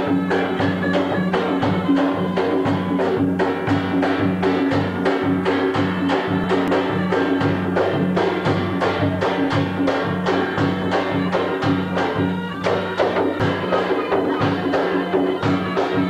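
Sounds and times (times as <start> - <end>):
drums playing dance beat: 0.0 - 16.0
held pitched notes: 0.0 - 16.0.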